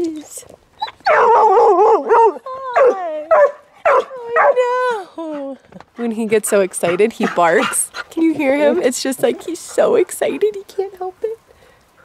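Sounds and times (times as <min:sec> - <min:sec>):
dog barking: 0:01.1 - 0:04.6.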